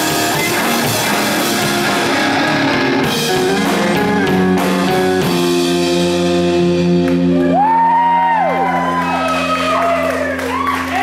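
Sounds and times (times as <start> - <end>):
electric guitar chord ringing: 0.0 - 11.0
people whooping: 7.3 - 11.0.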